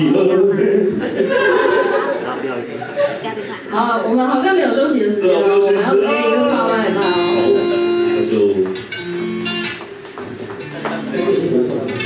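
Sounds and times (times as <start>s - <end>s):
person speaking: 2.6s - 8.8s
electric guitar notes ringing: 5.2s - 12.0s.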